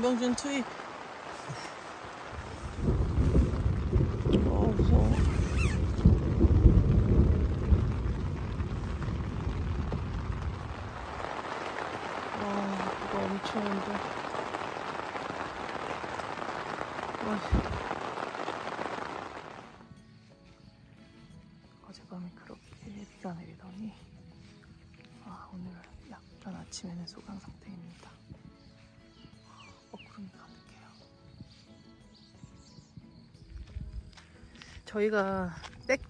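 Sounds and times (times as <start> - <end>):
thunder rumbling: 0.0 - 19.8
heavy rain on a tent: 0.0 - 19.9.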